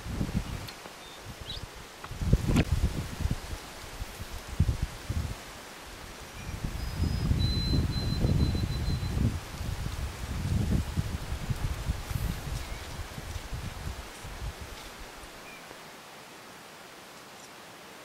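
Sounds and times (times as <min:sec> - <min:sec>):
wind gusting over microphone: 0:00.0 - 0:15.4
leaves and brush rustling: 0:00.0 - 0:18.0.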